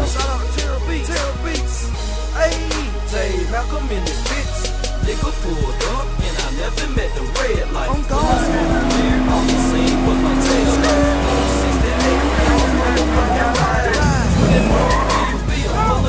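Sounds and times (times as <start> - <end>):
hip hop music with heavy bass: 0.0 - 16.0
car engine revving: 7.4 - 16.0
car tyres squealing: 8.1 - 16.0.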